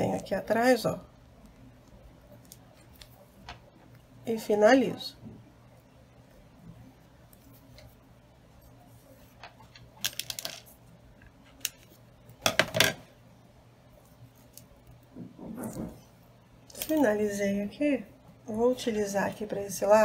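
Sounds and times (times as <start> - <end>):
soft rustle: 5.7 - 9.7.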